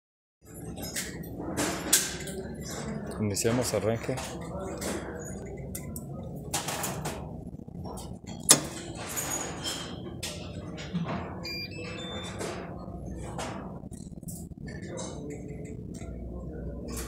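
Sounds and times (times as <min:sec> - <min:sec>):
workshop background noise: 0:00.4 - 0:17.0.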